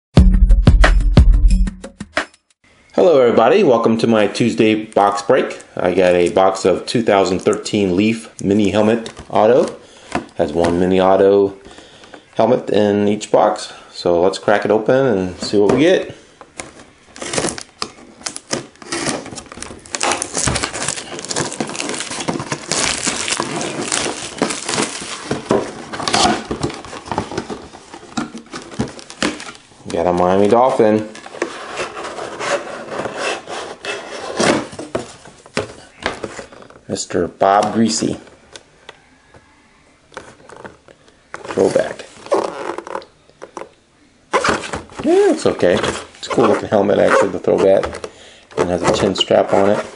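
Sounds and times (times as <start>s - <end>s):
plastic shrink-wrap tearing and crinkling: 17.2s - 28.0s
plastic case scraping on wood: 31.1s - 36.8s.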